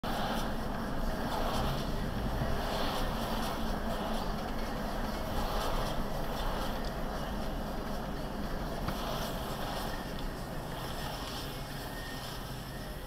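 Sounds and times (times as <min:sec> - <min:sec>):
car interior road and engine noise: 0:00.0 - 0:13.0.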